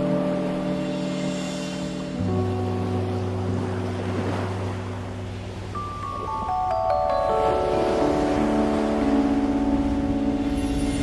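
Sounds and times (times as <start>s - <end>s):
low sustained music chord: 0.0s - 11.0s
ocean surf: 0.0s - 11.0s.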